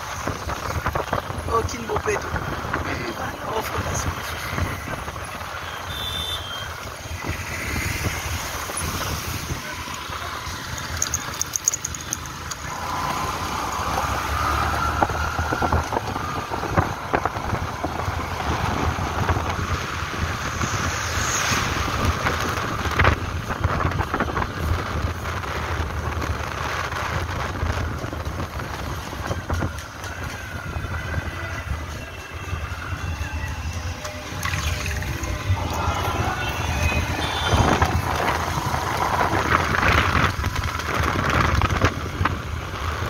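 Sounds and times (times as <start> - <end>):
wind buffeting microphone: 0.0 - 5.6, 12.2 - 43.0.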